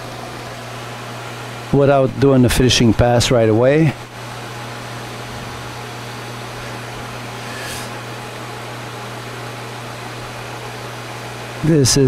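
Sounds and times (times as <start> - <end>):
metal lathe cutting: 6.4 - 8.4.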